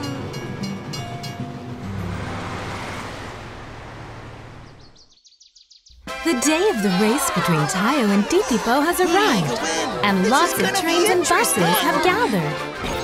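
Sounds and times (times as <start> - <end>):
rushing swell: 1.7 - 4.9
low hum: 1.7 - 5.0
soft cartoon music: 5.9 - 13.0.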